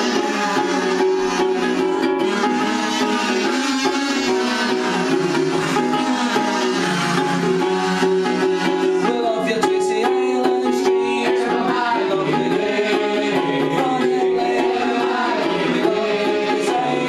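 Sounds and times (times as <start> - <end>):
sustained melody line: 0.0 - 17.0
ukulele playing: 0.0 - 17.0.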